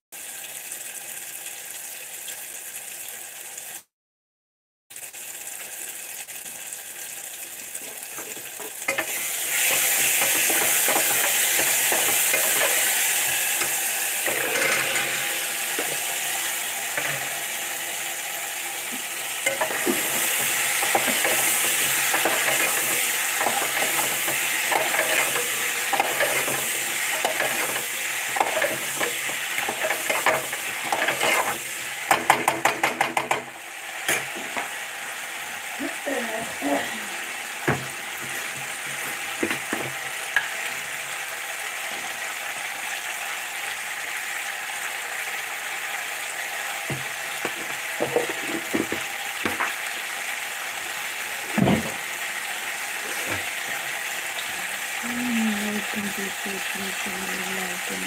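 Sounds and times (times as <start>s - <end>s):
hissing sizzling noise: 4.9s - 42.6s
scraping and clicking strokes: 28.4s - 31.6s.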